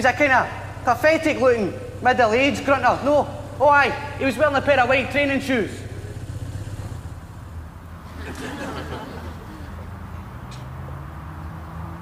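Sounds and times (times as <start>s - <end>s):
steady low rumble: 0.0s - 8.9s.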